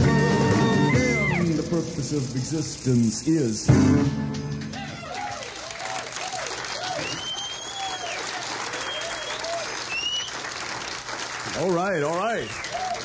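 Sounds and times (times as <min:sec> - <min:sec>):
audience applauding and cheering: 0:00.0 - 0:02.4, 0:04.5 - 0:13.0
whistling from audience: 0:00.6 - 0:01.4, 0:05.2 - 0:10.7, 0:12.2 - 0:13.0.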